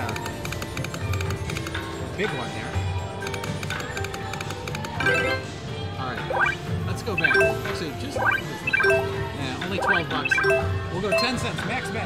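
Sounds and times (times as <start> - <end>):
slot machine spin music: 4.9 - 11.8
bright chime tones: 7.2 - 11.3.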